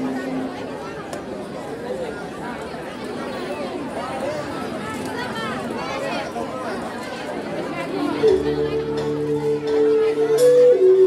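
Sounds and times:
audience chatter: 0.0 - 11.0.

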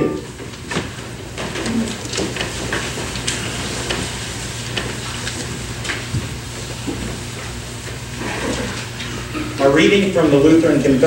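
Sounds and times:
congregation rustling and shuffling: 0.0 - 11.0
books and papers handled: 0.5 - 8.8.

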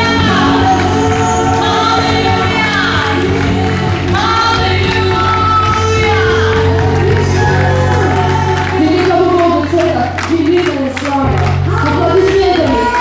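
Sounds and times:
group of voices singing: 0.0 - 9.8
electric guitar: 0.0 - 13.0
lead singer: 0.0 - 13.0
worship band playing: 0.0 - 13.0.

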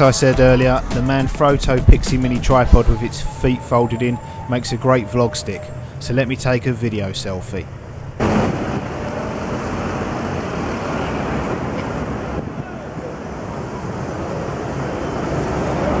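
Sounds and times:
wind buffeting microphone: 0.0 - 7.0
crowd noise: 0.0 - 11.8
traffic: 0.0 - 16.0.

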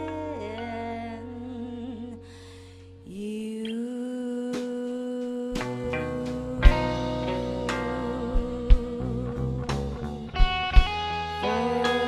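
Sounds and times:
bass notes: 0.0 - 3.2, 5.6 - 12.0
struck chords: 4.6 - 12.0
long held humming note: 5.1 - 10.3
live band music: 5.6 - 12.0.

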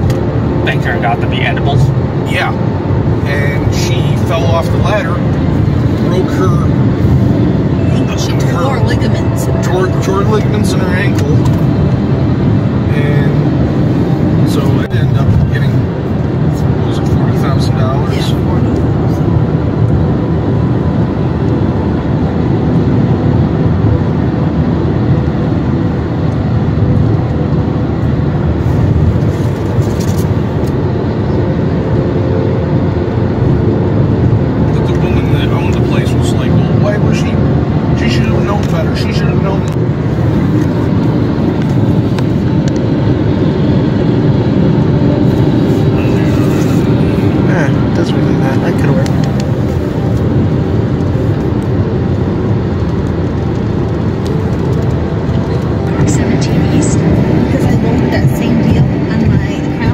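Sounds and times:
muffled voices: 0.0 - 21.6, 32.7 - 59.9
car road and engine noise: 0.0 - 59.9.

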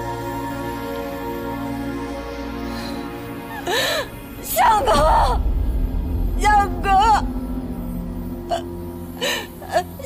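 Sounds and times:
background music drone: 0.0 - 10.0
woman sobbing: 3.2 - 5.5, 8.5 - 10.0.

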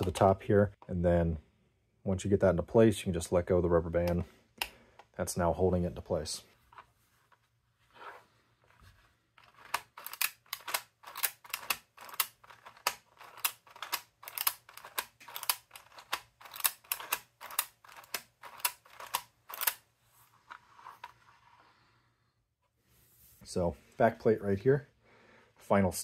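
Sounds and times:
plastic counter mechanism clicking: 9.4 - 19.8.

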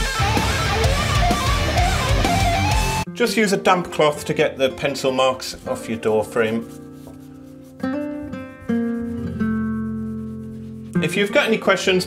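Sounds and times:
acoustic guitar plucked notes: 6.5 - 11.2.

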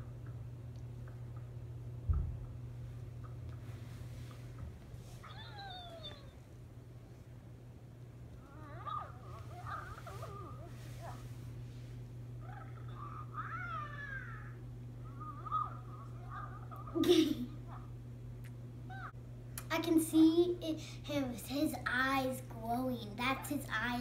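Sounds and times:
toy squeaky chirps and coos: 5.2 - 6.4, 12.4 - 16.9.

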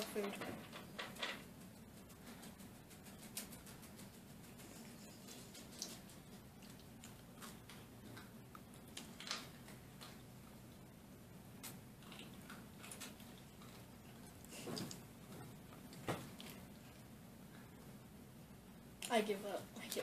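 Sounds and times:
low steady hum: 0.0 - 20.0
soft chewing: 1.5 - 18.1.

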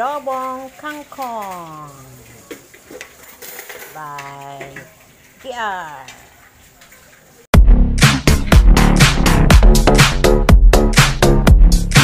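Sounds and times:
person speaking: 0.0 - 2.5, 3.8 - 6.4.

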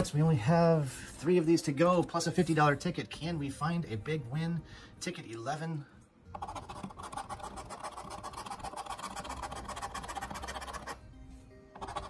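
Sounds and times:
background music: 0.0 - 12.0
coin scratching lottery ticket: 6.4 - 11.0, 11.8 - 12.0.

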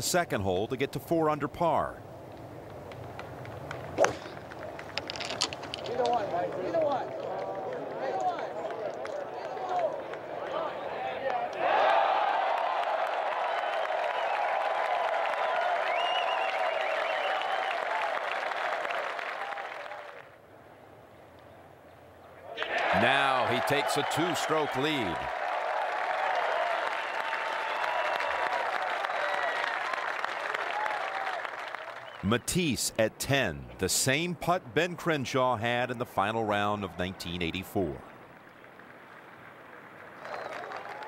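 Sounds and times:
golf club striking ball: 4.0 - 4.4
crowd cheering: 5.9 - 20.4, 22.4 - 32.6, 38.2 - 41.0
applause: 6.4 - 20.4, 22.6 - 32.3, 38.2 - 41.0.

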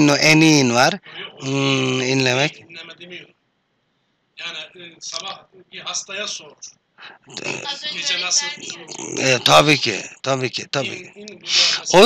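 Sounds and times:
man groaning: 1.4 - 2.1, 7.1 - 7.8, 8.6 - 10.0.

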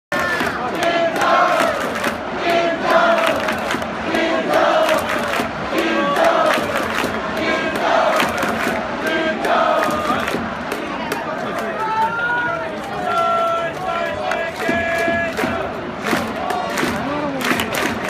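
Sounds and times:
rhythmic clapping: 0.1 - 11.9, 12.8 - 18.0
crowd chanting in unison: 0.1 - 18.0.

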